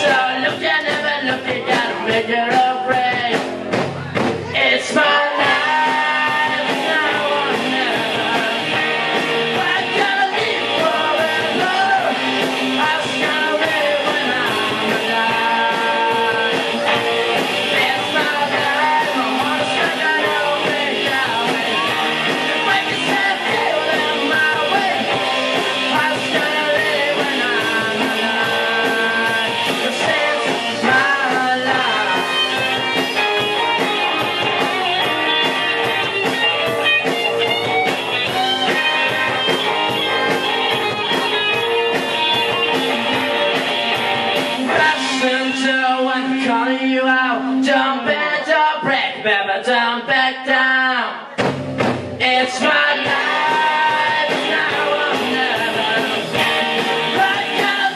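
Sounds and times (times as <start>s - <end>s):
steady drum beat: 0.0s - 45.6s, 51.4s - 57.9s
electric guitar: 0.0s - 49.4s, 50.4s - 57.9s.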